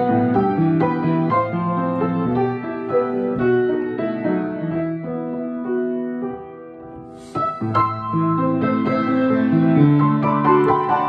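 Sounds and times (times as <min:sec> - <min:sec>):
upright piano playing: 0:00.0 - 0:11.0.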